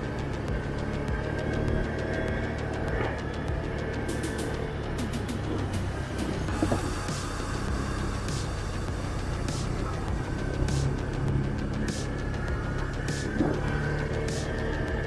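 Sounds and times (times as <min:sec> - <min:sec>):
atv engine running: 0:00.0 - 0:15.0
electronic music with sharp beat: 0:00.0 - 0:15.0.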